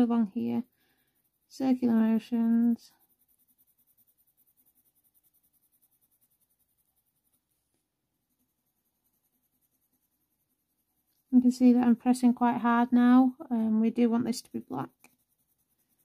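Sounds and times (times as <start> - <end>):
coloured pencil scratching on paper: 0.0 - 16.0.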